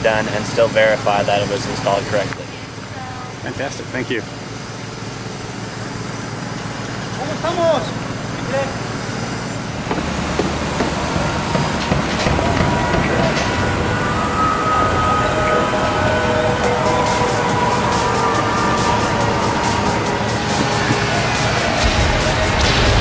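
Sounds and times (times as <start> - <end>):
construction site noise: 0.0 - 23.0
street traffic: 0.0 - 23.0
music with steady beat: 16.6 - 23.0.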